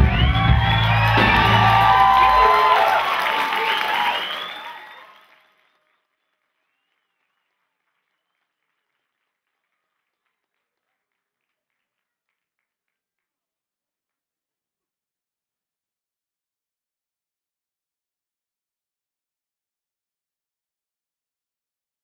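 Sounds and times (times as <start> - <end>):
audience applauding and cheering: 0.0 - 9.4.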